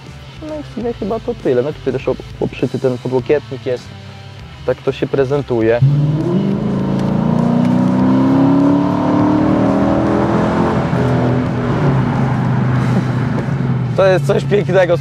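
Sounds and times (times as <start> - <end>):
car engine accelerating: 5.8 - 15.0.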